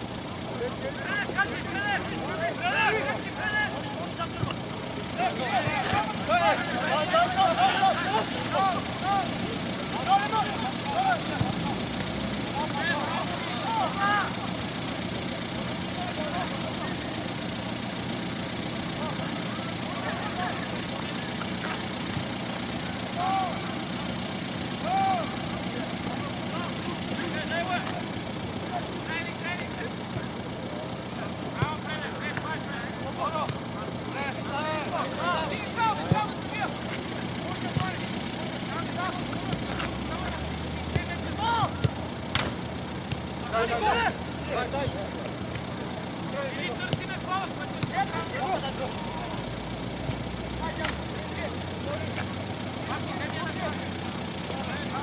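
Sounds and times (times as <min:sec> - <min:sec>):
distant shouts of players: 0:00.4 - 0:54.0.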